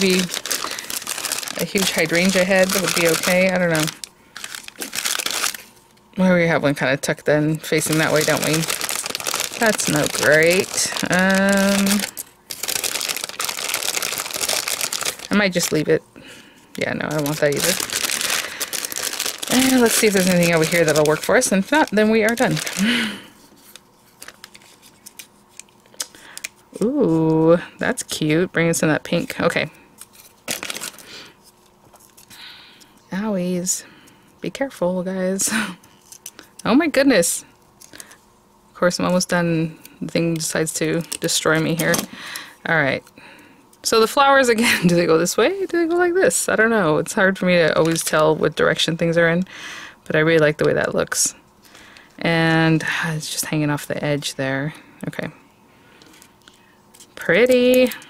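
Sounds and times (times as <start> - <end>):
plastic bag crinkling: 0.0 - 5.9, 7.6 - 16.0, 16.7 - 26.4, 30.0 - 32.4.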